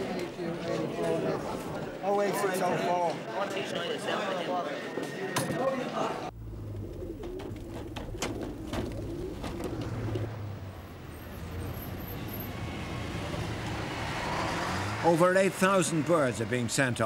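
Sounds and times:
low steady rumble: 0:06.3 - 0:10.3
pigeons cooing: 0:06.5 - 0:10.4.

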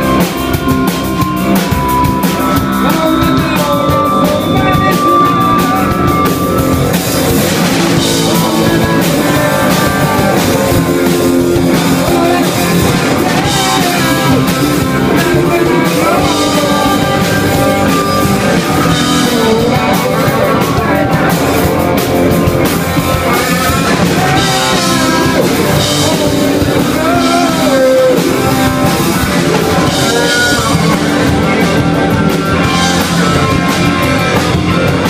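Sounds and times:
bending lead guitar line: 0:00.0 - 0:35.0
drum kit: 0:00.0 - 0:35.0
electric guitars: 0:00.0 - 0:35.0.

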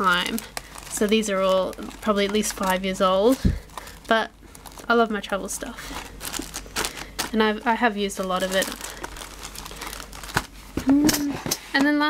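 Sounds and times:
plastic bags crinkling: 0:00.0 - 0:11.0.

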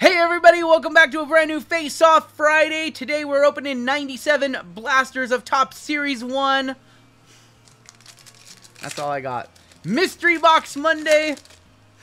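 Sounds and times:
wrapper crinkling: 0:07.6 - 0:11.7.

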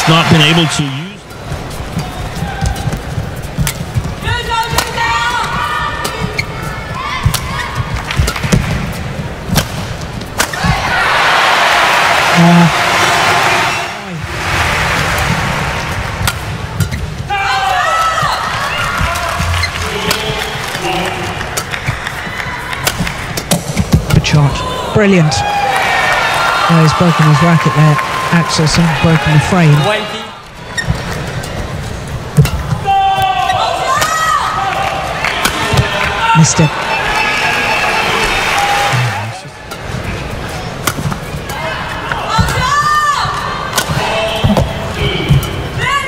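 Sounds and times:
crowd cheering and applause: 0:00.0 - 0:01.2, 0:10.5 - 0:16.7, 0:17.3 - 0:23.5, 0:24.2 - 0:30.5, 0:32.9 - 0:39.6
crowd voices: 0:00.0 - 0:46.0
racket striking shuttlecock: 0:03.6 - 0:06.5, 0:07.2 - 0:10.8, 0:16.0 - 0:17.2, 0:21.4 - 0:24.2, 0:32.3 - 0:33.3, 0:40.7 - 0:41.5.

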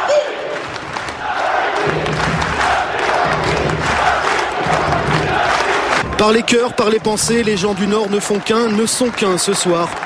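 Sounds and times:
crowd chanting in unison: 0:00.0 - 0:07.0
general crowd noise: 0:00.0 - 0:10.0.

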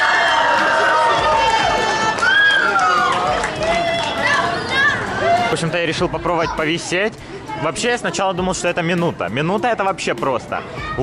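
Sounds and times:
children shouting and cheering: 0:00.0 - 0:06.8, 0:10.5 - 0:11.0.

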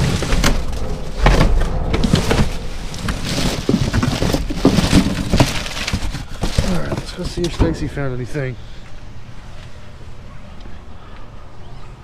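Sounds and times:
dull knocks of boxes shifting: 0:00.0 - 0:08.0
plastic and cardboard crinkling: 0:00.0 - 0:08.4.

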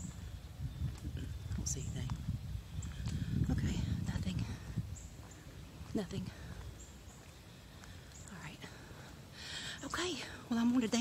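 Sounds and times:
woman speaking: 0:03.4 - 0:04.7, 0:05.9 - 0:06.5, 0:08.2 - 0:08.8, 0:09.7 - 0:11.0
woman breathing: 0:07.4 - 0:10.5.

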